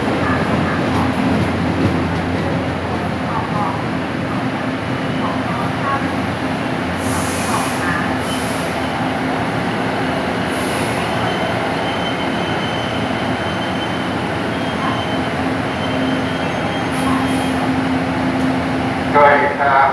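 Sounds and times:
diesel train rolling and braking: 0.0 - 19.9
brake and wheel squeal: 10.5 - 17.7.

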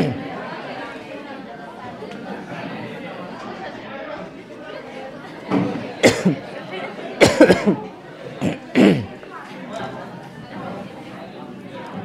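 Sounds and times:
students chattering: 0.0 - 12.0.

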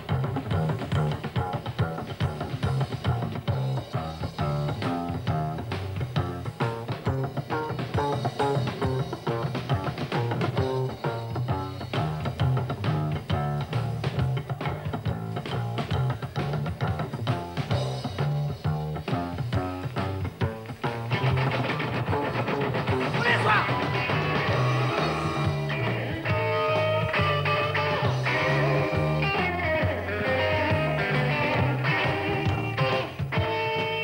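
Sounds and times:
drums keeping a steady beat: 0.0 - 34.0
electric guitar: 0.0 - 34.0
upright double bass: 0.0 - 34.0.

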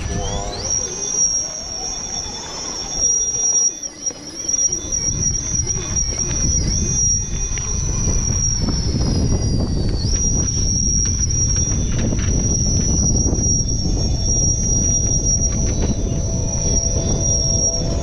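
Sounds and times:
electric motor and gears whining: 0.0 - 18.0
low rumble: 5.0 - 18.0.

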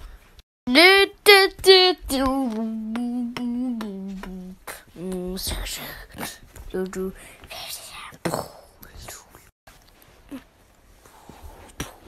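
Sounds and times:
person whispering: 7.1 - 9.5.

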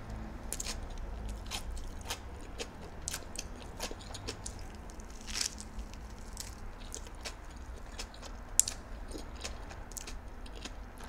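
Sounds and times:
wet chewing sounds: 0.0 - 11.0
crisp crunches while chewing: 0.5 - 11.0.

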